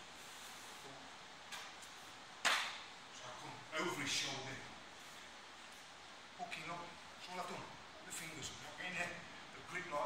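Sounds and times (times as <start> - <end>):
sharp slap on a mat: 2.4 - 2.8.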